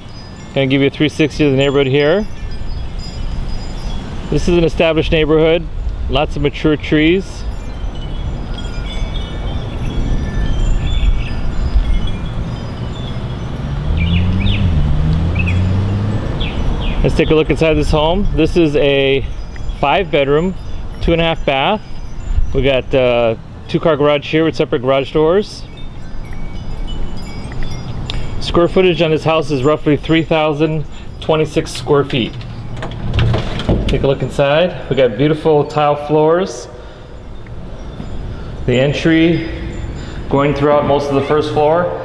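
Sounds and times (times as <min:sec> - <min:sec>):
wind rumble on microphone: 0:00.0 - 0:35.2
vehicle engine hum: 0:08.9 - 0:18.9, 0:25.9 - 0:35.1.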